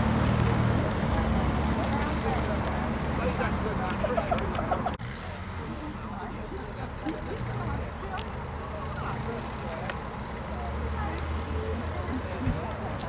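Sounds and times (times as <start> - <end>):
people talking in background: 0.0 - 13.0.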